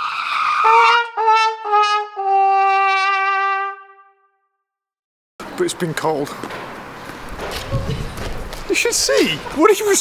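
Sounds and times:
sad trombone sound effect: 0:00.6 - 0:04.4.

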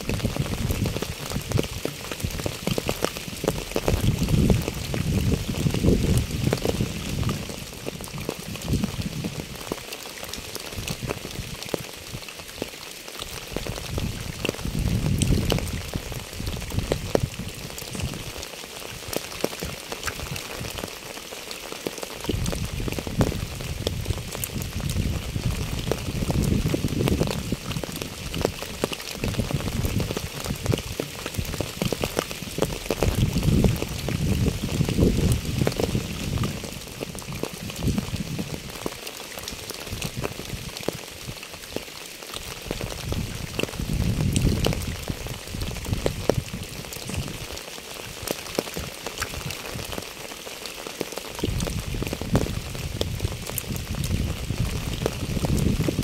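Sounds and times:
rain pattering on asphalt: 0:00.0 - 0:56.0.

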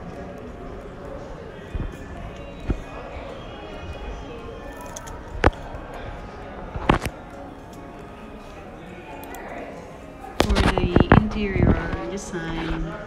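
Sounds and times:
background music: 0:00.0 - 0:13.0
indistinct voices: 0:00.0 - 0:13.0.

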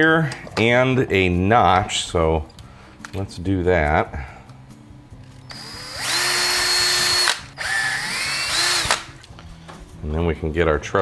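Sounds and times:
cordless drill whining: 0:05.4 - 0:09.2.

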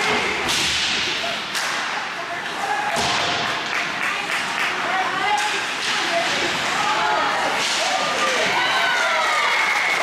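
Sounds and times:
hockey sticks and puck on ice: 0:00.0 - 0:06.8.

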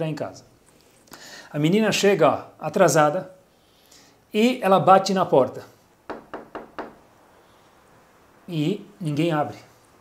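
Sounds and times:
knuckles knocking on hard surface: 0:06.1 - 0:07.0.

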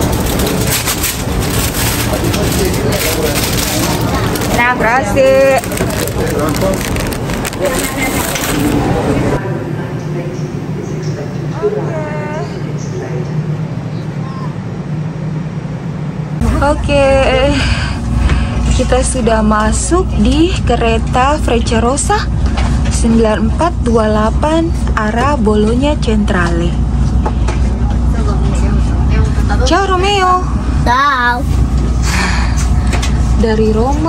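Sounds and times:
low rumble: 0:00.0 - 0:34.0
railway platform hum: 0:00.0 - 0:34.0
quick crackling rustles: 0:00.1 - 0:08.8.

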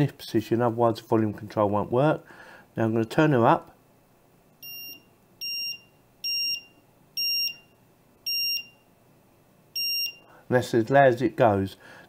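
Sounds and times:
timer short beeps: 0:04.6 - 0:07.7, 0:08.3 - 0:08.8, 0:09.8 - 0:10.3.

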